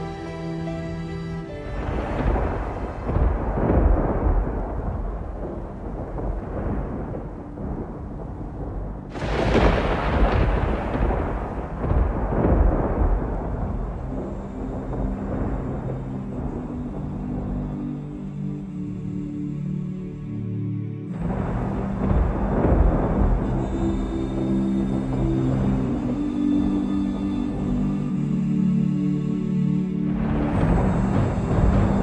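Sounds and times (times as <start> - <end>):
soft music tones: 0.0 - 32.0
thunder rolling: 1.6 - 18.3, 21.2 - 28.1, 30.1 - 32.0.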